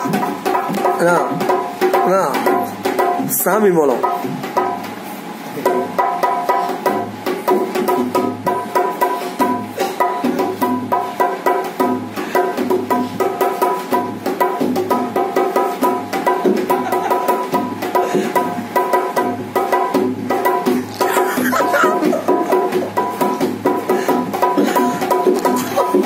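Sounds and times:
hand drum played fast: 0.0s - 5.0s, 5.6s - 26.0s.

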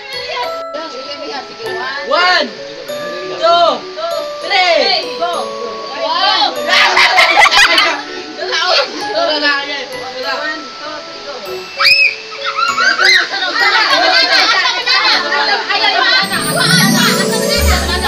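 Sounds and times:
background music: 0.0s - 18.0s
children and adults chattering: 0.0s - 18.0s.

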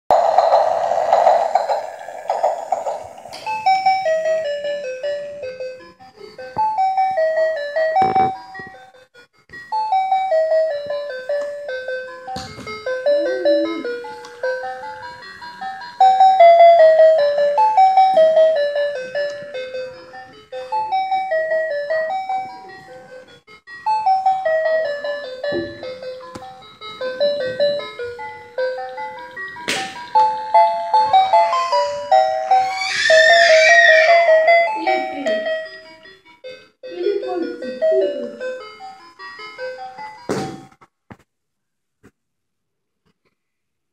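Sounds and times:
toy train electronic chime tune: 0.1s - 40.3s.

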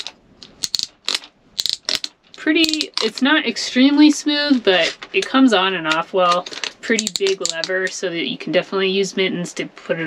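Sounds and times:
ratchet buckle clicking: 0.0s - 3.1s.

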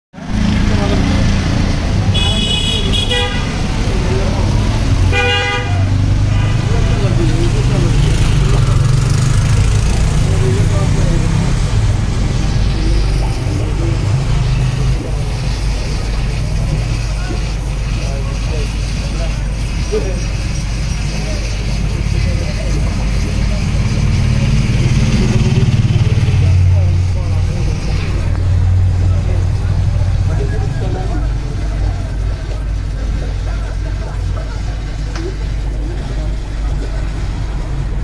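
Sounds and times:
indistinct voices: 0.2s - 38.0s
horn toots: 2.1s - 7.2s
steady low rumble: 9.5s - 38.0s.

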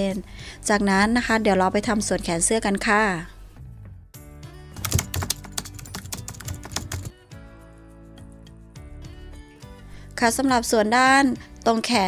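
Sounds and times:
background music: 0.0s - 12.0s
keyboard typing clicks: 4.8s - 7.1s.

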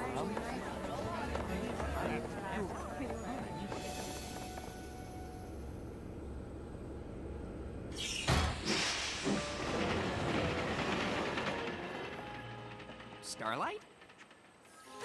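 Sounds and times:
steam train rumble: 0.0s - 7.9s, 8.7s - 14.8s
steam hissing: 3.7s - 4.9s, 8.0s - 11.2s.

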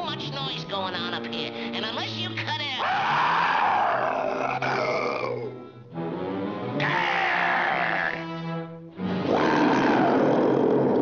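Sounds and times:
background music: 0.0s - 11.0s
cartoon lion roaring: 2.9s - 5.5s, 6.8s - 8.3s, 9.1s - 11.0s.

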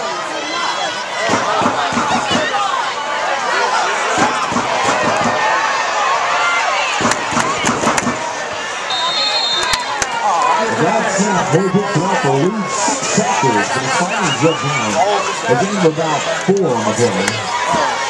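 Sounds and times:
crowd shouting and chattering: 0.0s - 18.0s
referee's whistle: 8.9s - 10.0s.

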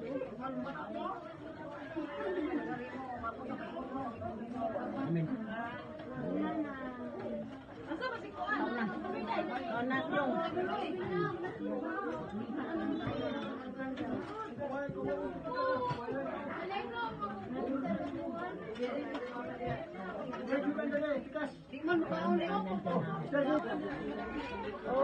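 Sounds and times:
many people talking: 0.0s - 25.0s.

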